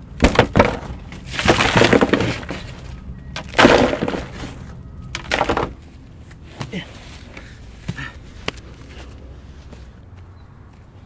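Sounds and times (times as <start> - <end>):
brick chunks crunching and clattering: 0.0 - 5.8.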